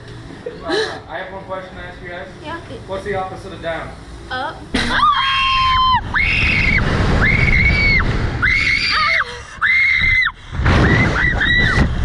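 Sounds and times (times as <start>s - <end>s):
women screaming: 4.9s - 10.4s
wind rush on microphone: 5.6s - 9.2s, 9.9s - 12.0s.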